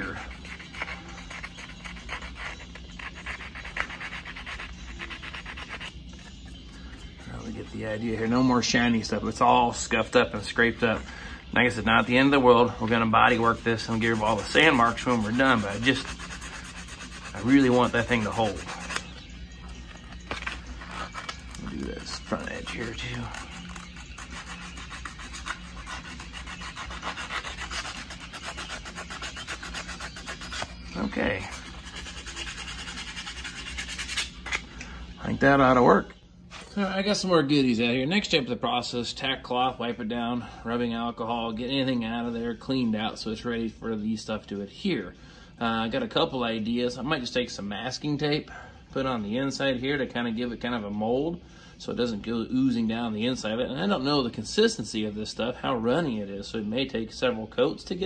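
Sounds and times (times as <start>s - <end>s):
sandpaper scuffing plastic: 13.2s - 19.1s, 20.2s - 34.6s.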